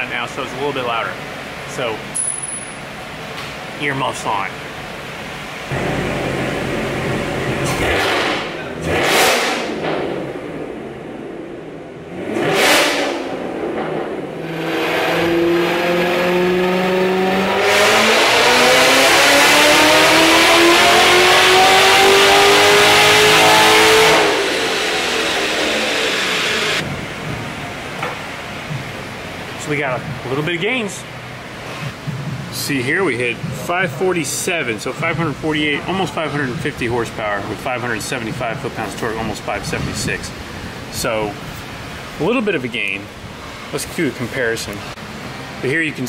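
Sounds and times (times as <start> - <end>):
car engine revving on a dyno: 4.6 - 32.1, 44.8 - 45.7.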